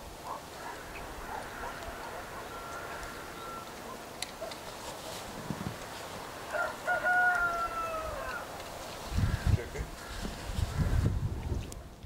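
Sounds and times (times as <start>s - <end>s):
animal call: 0.3s - 4.6s.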